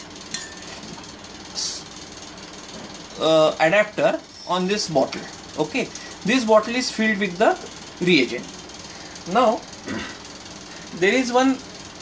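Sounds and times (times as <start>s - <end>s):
background hum: 0.0s - 12.0s
glass clink: 0.3s - 0.8s.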